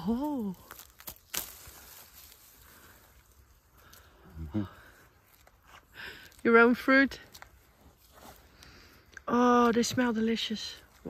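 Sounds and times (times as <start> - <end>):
fruit stem snapping: 0.2 - 2.4.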